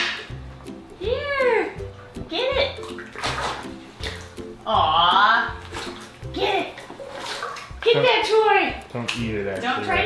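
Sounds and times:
background music: 0.0s - 10.0s
water splashing and sloshing: 1.7s - 10.0s.

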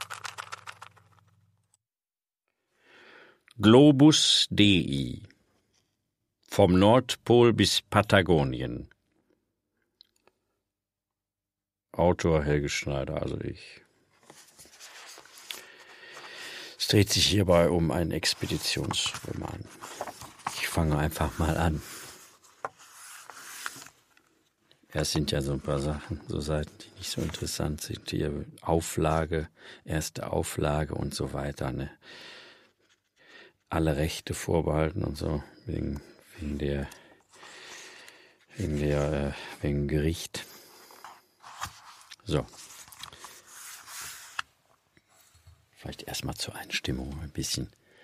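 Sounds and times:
book pages rustling: 0.0s - 1.4s, 14.1s - 17.3s, 18.1s - 24.6s, 27.0s - 27.6s, 36.4s - 39.6s, 40.8s - 45.5s
person drawing a breath: 2.7s - 3.4s, 15.4s - 16.8s, 32.0s - 33.6s, 37.0s - 38.5s.

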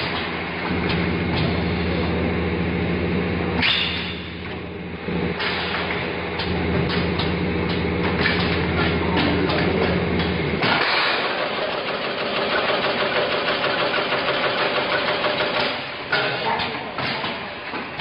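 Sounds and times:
low steady machine hum: 0.0s - 10.7s
machine mechanical clacks: 5.4s - 18.0s
fast dense machine rattle: 10.6s - 15.9s.

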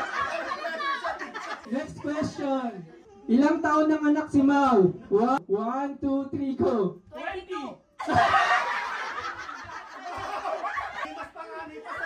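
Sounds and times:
roomful of people laughing: 0.0s - 3.3s, 7.9s - 12.0s.

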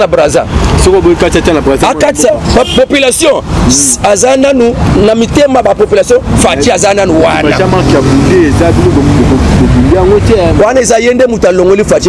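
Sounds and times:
man talking haltingly: 0.0s - 12.0s.

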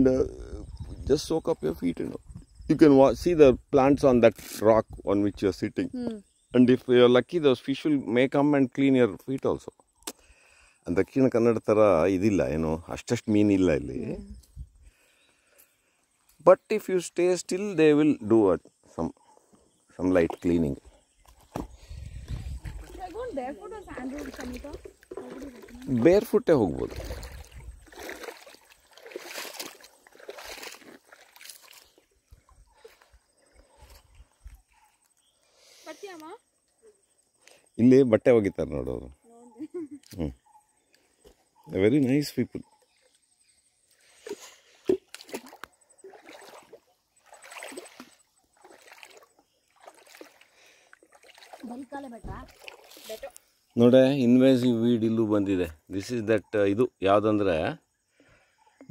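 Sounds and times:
footsteps wading through water: 21.2s - 35.2s, 44.1s - 53.8s.

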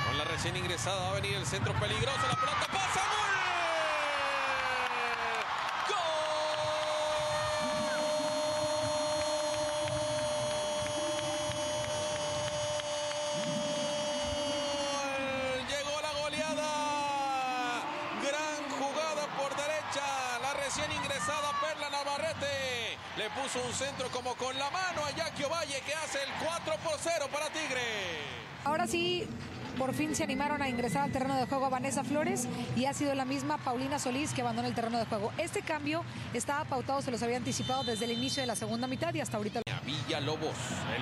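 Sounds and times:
commentator shouting: 5.8s - 28.6s.

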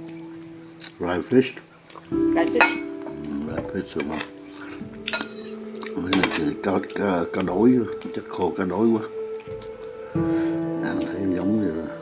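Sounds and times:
utensils clinking against dishes: 2.5s - 2.9s, 5.1s - 6.6s.

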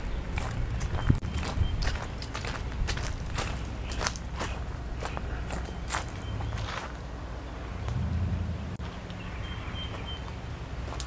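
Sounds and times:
footsteps on grass and dry leaves: 0.0s - 7.0s, 9.9s - 11.0s.

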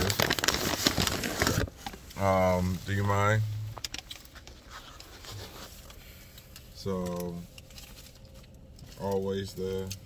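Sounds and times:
paper wrapper crinkling: 0.0s - 3.0s.

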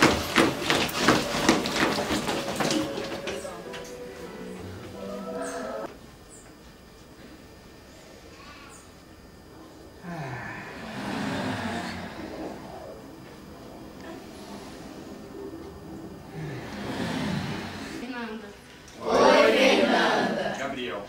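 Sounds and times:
group of people talking: 16.2s - 21.0s.

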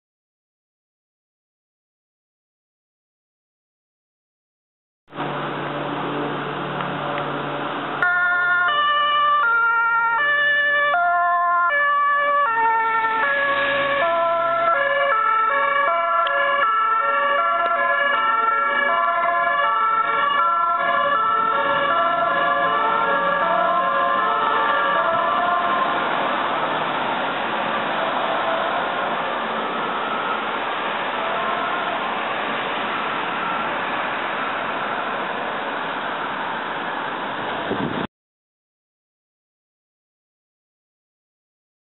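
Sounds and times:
street traffic noise: 5.1s - 38.1s
two-tone ambulance siren: 8.0s - 37.2s.

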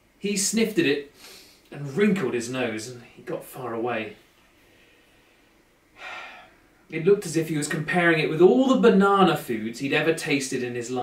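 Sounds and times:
man breathing in: 1.2s - 1.7s, 4.6s - 6.8s.

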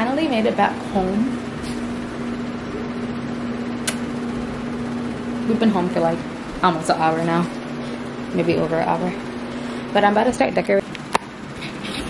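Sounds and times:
fan humming: 0.0s - 12.0s
sharp click: 3.8s - 4.0s.

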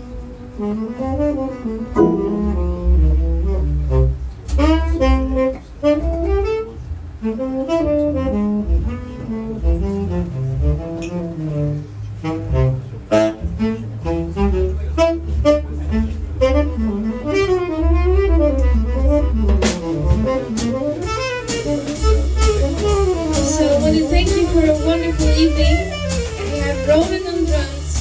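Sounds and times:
bass: 0.0s - 28.0s
saxophone solo: 0.5s - 27.8s
keyboard: 2.0s - 4.0s
drums: 12.5s - 28.0s.

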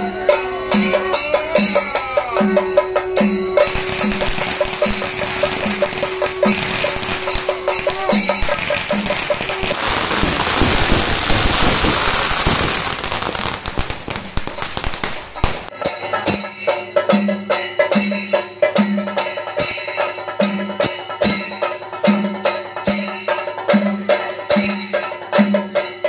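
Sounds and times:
rhythmic music: 0.0s - 26.0s
firecrackers going off: 3.2s - 17.0s.

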